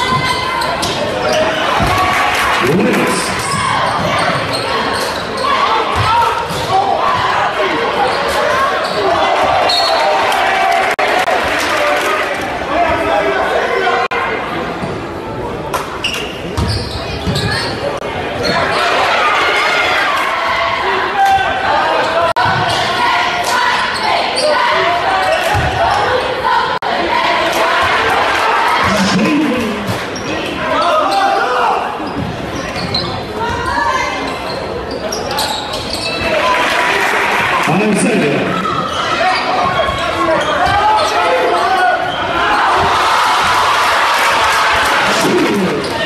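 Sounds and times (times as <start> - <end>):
crowd voices echoing in gym: 0.0 - 46.0
people talking and calling out: 0.0 - 46.0.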